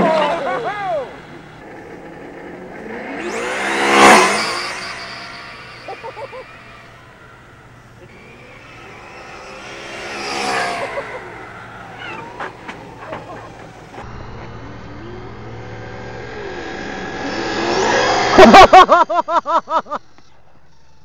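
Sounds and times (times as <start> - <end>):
simulated engine sound from speaker: 0.0 - 18.8.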